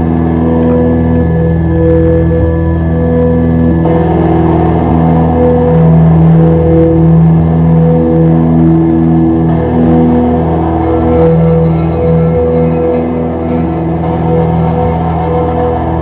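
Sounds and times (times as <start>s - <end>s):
droning electric guitars: 0.0s - 16.0s.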